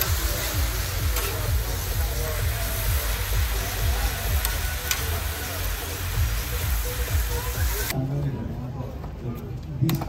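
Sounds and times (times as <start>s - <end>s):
metal fork stirring on griddle: 0.0s - 1.6s
cabbage sizzling on griddle: 0.0s - 7.9s
background music with low beat: 0.0s - 8.0s
fork clicking on steel: 4.4s - 5.1s.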